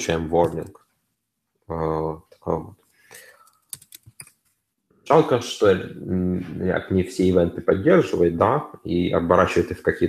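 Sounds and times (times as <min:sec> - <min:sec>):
keyboard keystrokes: 0:03.5 - 0:04.4.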